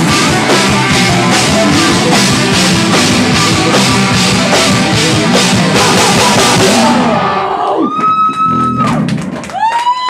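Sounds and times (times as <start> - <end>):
live metal band playing: 0.0 - 7.8.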